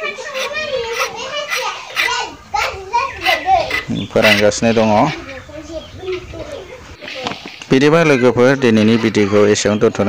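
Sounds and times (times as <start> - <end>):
child talking: 0.0 - 9.4.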